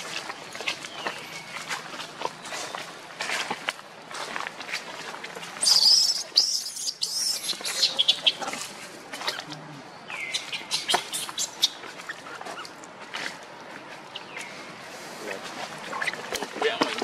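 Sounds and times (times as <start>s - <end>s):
baby monkey squealing: 5.6s - 8.4s.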